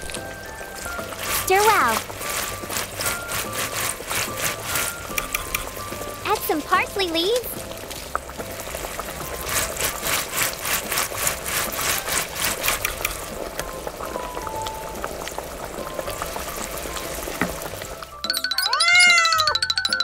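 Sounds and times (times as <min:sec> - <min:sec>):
sauce popping and bubbling: 0:00.0 - 0:19.6.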